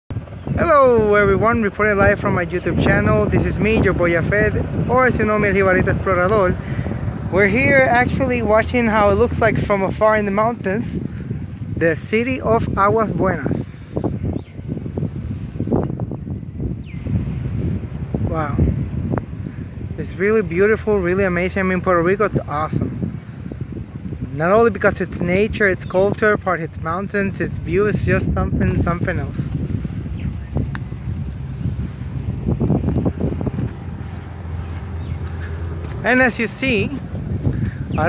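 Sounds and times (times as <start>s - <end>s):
wind buffeting microphone: 0.1s - 38.0s.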